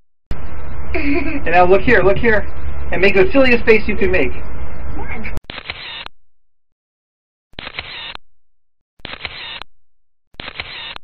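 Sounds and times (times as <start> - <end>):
camera shutter sound: 5.5 - 6.1, 7.6 - 8.2, 9.0 - 9.6, 10.4 - 11.0.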